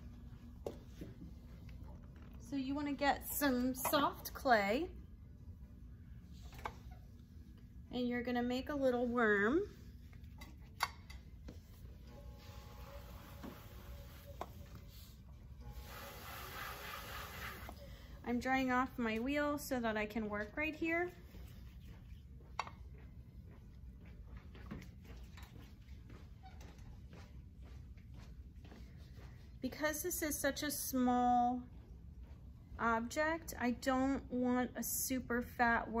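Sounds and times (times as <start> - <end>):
low steady hum: 0.0 - 36.0.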